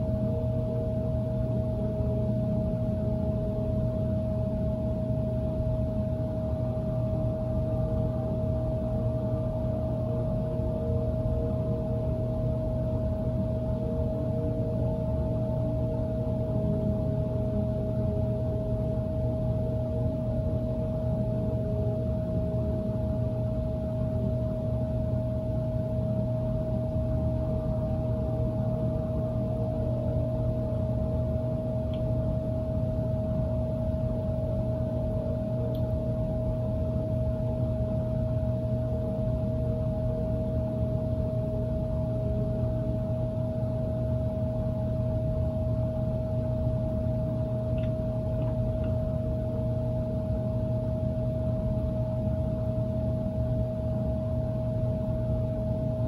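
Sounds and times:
constant low hum: 0.0s - 56.0s.

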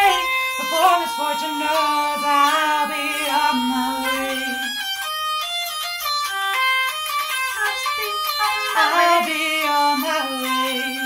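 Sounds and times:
hurdy-gurdy melody: 0.0s - 11.0s.

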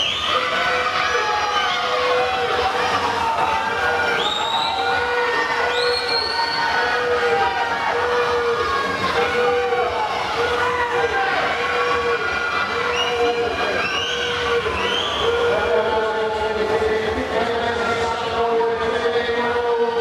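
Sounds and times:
shrill whistles: 0.0s - 0.5s, 4.2s - 4.9s, 5.7s - 6.8s, 12.9s - 15.4s
spectators cheering: 0.0s - 16.0s.

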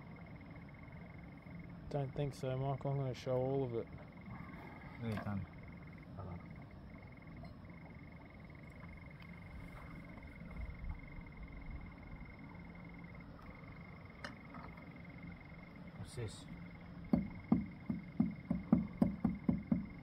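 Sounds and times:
low background rumble: 0.0s - 20.0s.

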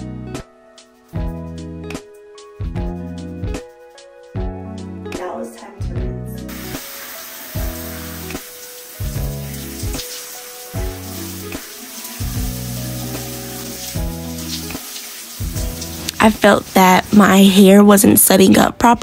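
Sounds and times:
background music with steady beat: 0.0s - 19.0s
shower water spraying: 6.5s - 18.5s.

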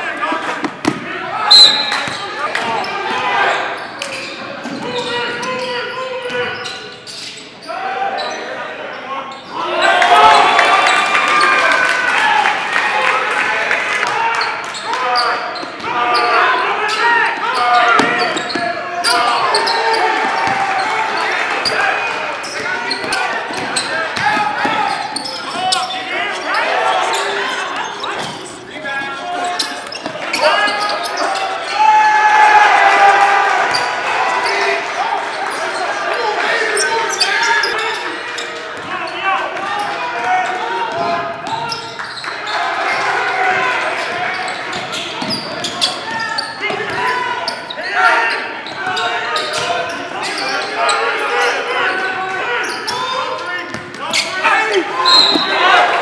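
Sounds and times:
voices echoing in a hall: 0.0s - 56.0s.

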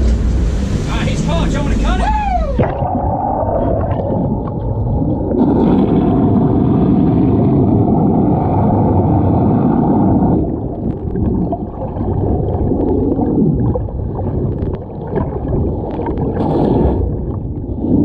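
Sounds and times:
boat engine: 0.0s - 7.0s
muffled underwater engine rumble: 0.0s - 18.0s
water wash: 0.0s - 18.0s.

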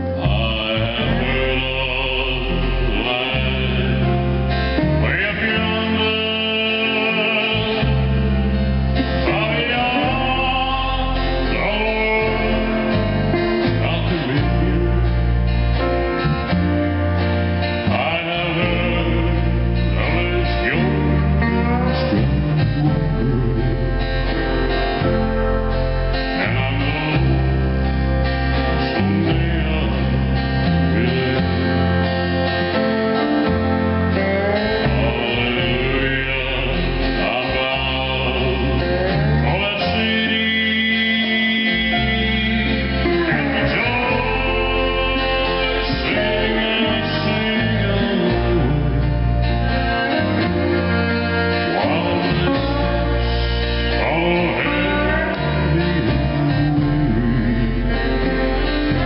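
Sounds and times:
guitar: 0.0s - 59.0s
man singing: 0.0s - 59.0s
upright double bass: 0.0s - 59.0s.

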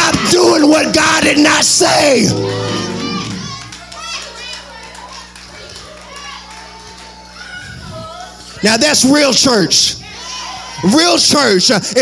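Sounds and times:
congregation calling out: 0.0s - 3.8s.

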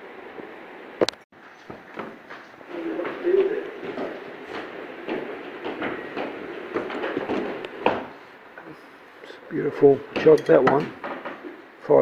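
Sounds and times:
ceramic crockery clinking: 10.2s - 11.0s.

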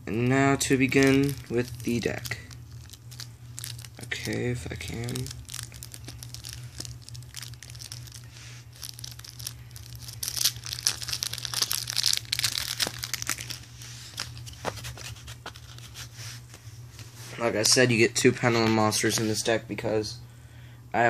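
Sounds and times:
steady low hum: 0.0s - 21.0s
plastic wrapper crinkling and tearing: 0.6s - 16.0s.

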